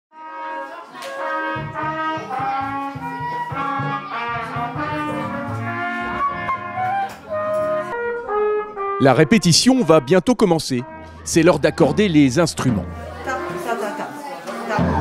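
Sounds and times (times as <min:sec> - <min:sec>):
brass band tuning up: 0:00.2 - 0:13.8.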